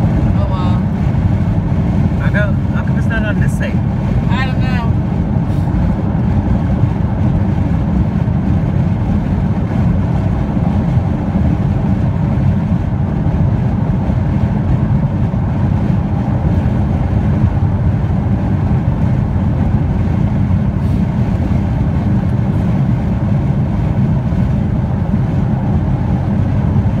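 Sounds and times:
car interior road noise: 0:00.0 - 0:27.0.

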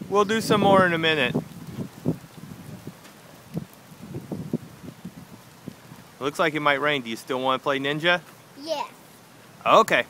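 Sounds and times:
wind on microphone: 0:00.0 - 0:06.2.

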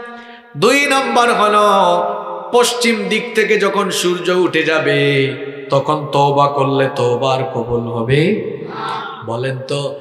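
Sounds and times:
man chanting a sung sermon: 0:00.0 - 0:08.4.

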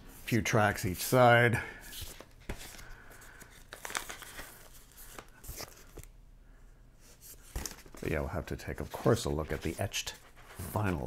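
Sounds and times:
record sleeve rustling: 0:00.2 - 0:06.2, 0:07.0 - 0:11.0.

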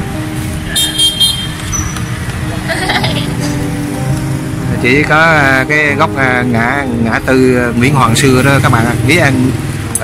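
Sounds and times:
passing motorbikes and cars: 0:00.0 - 0:10.0
vehicle horn toot: 0:00.7 - 0:02.0.

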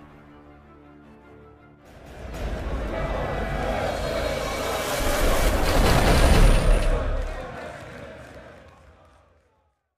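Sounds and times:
whooshing sound effect: 0:02.0 - 0:07.3.

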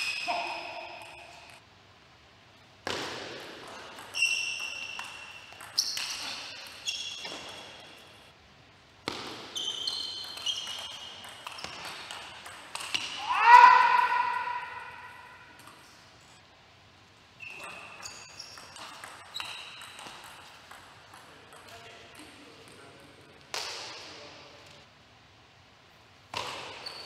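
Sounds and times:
player shouting: 0:13.2 - 0:15.3.

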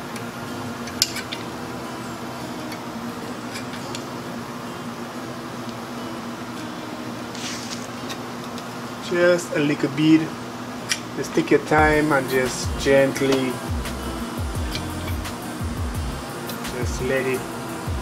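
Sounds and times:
steady mechanical hum: 0:00.0 - 0:18.0
short hiss: 0:07.3 - 0:07.9.

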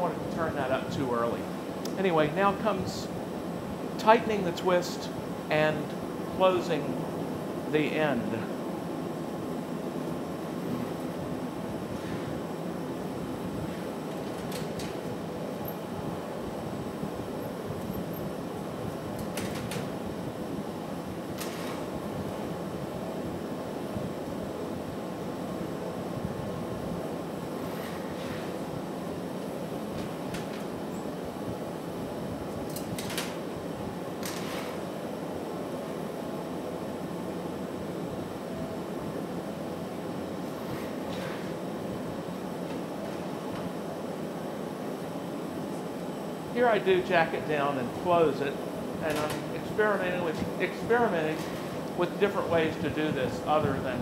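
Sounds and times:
exhaust ventilation: 0:00.0 - 0:54.0
gas furnace roar: 0:00.0 - 0:54.0.

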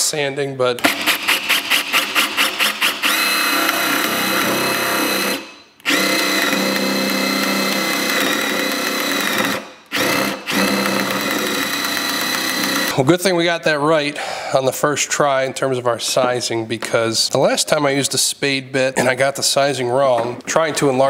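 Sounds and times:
cordless drill whining: 0:00.8 - 0:13.0.

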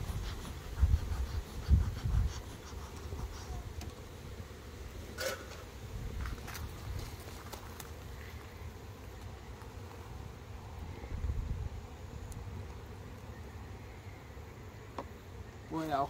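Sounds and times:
honeybees buzzing: 0:00.0 - 0:16.0.

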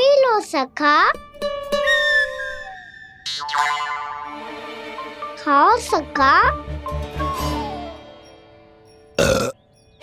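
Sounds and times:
background music: 0:00.6 - 0:10.0
loud burp: 0:09.2 - 0:09.6.

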